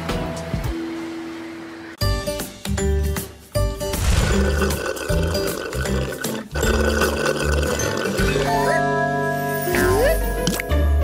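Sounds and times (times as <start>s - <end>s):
slurping through straws: 4.2s - 8.8s.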